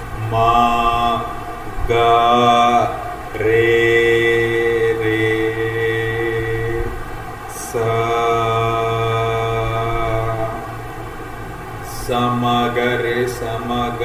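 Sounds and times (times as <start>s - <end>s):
man singing unaccompanied: 0.0s - 11.0s, 11.8s - 14.0s.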